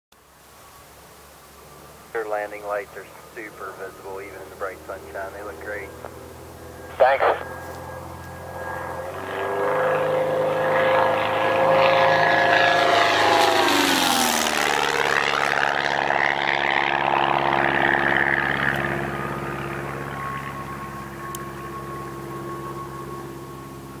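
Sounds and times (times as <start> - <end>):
propeller airplane flyby: 0.2 - 24.0.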